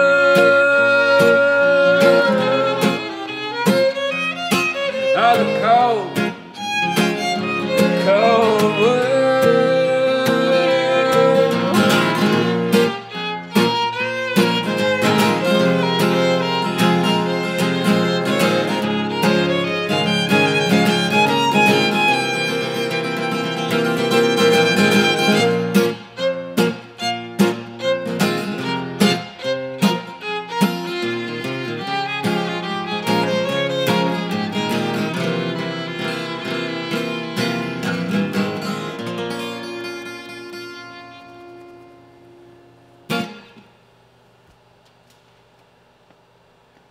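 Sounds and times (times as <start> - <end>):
bowed fiddle melody: 0.0 - 41.8
strummed acoustic guitar: 0.0 - 43.8.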